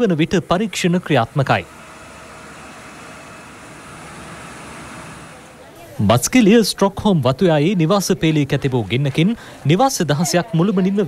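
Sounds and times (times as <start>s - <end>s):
fire engines running: 0.0s - 6.6s.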